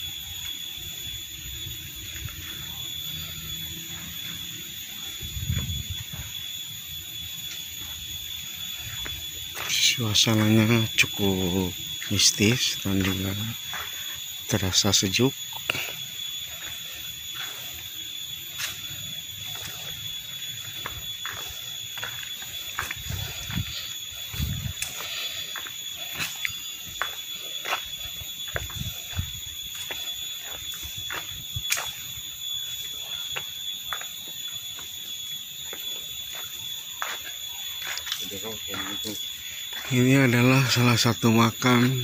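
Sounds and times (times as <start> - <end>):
high-pitched whine: 0.0 - 42.0.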